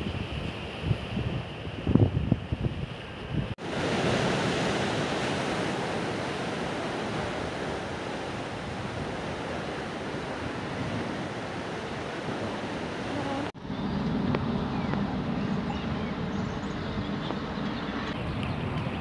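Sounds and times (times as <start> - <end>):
wind buffeting microphone: 0.0 - 19.0
sea waves breaking on rocks: 3.0 - 13.5.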